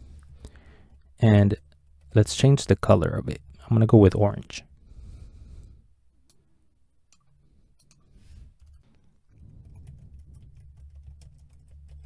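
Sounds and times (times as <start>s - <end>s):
typing on a keyboard: 7.2s - 12.0s.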